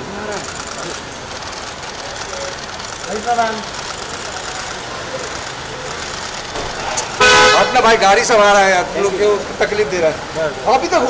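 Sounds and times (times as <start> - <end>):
street background noise: 0.0 - 11.0
vehicle horn honk: 7.0 - 8.0.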